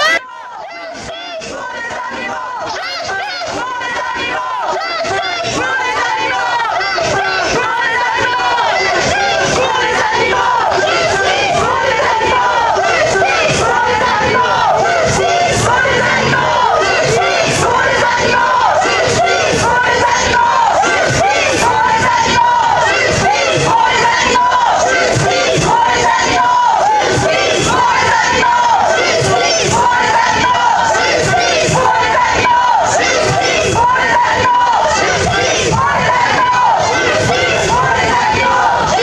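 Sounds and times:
crowd chanting slogan: 0.0s - 39.0s.

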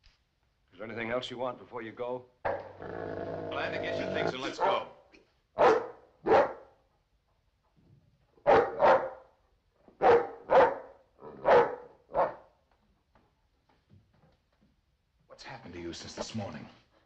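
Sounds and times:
dog barking: 2.4s - 2.8s, 5.6s - 6.8s, 8.4s - 9.4s, 10.0s - 12.5s.

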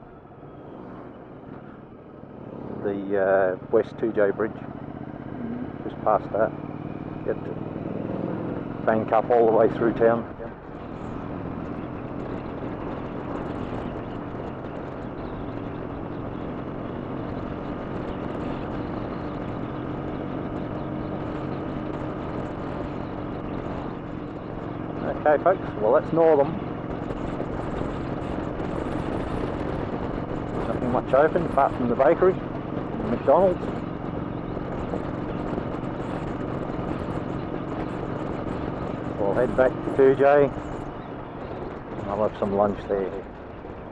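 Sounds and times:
motorcycle engine cruising: 0.0s - 43.9s
wind and road noise: 0.0s - 43.9s.

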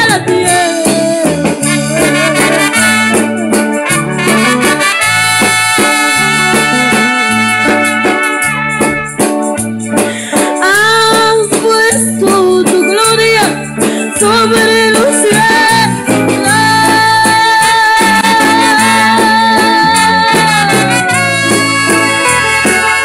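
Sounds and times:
repeating bass line: 0.0s - 10.2s, 13.4s - 23.0s
hand percussion: 0.0s - 23.0s
brass lead melody: 1.6s - 10.3s, 15.2s - 23.0s.

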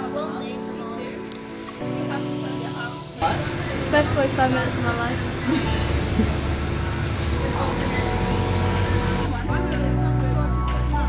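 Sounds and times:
music with low chords: 0.0s - 11.0s
boy laughing: 5.4s - 6.5s.

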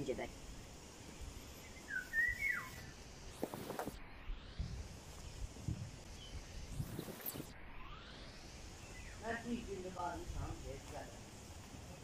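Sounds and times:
bird chirp: 1.0s - 3.0s, 6.1s - 7.5s, 8.5s - 9.5s.

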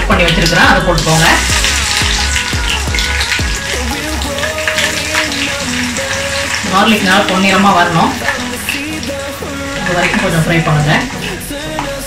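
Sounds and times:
music with deep bass beat: 0.0s - 6.7s
oil sizzling and bubbling: 0.0s - 12.0s.

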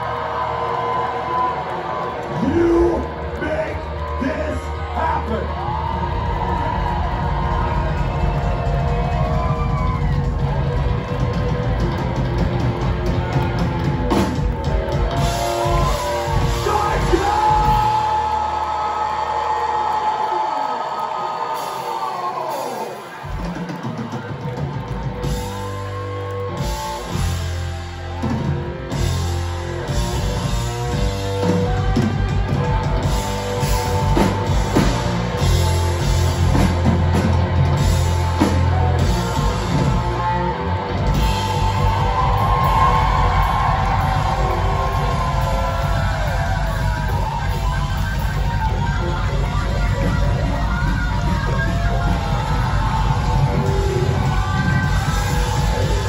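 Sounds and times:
bass guitar: 0.0s - 20.6s, 21.6s - 56.0s
distorted electric guitars: 0.0s - 20.6s, 21.5s - 56.0s
crowd noise: 0.0s - 56.0s
drums: 0.0s - 56.0s.

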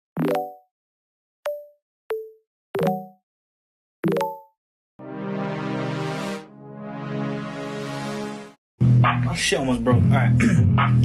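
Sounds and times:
pitched plop sound effects: 0.2s - 0.6s, 1.5s - 3.2s, 4.0s - 4.5s.

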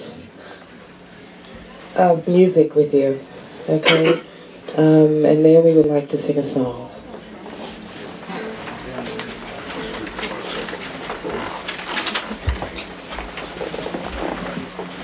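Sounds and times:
low steady hum: 0.0s - 15.0s
murmur of people talking: 0.0s - 15.0s.

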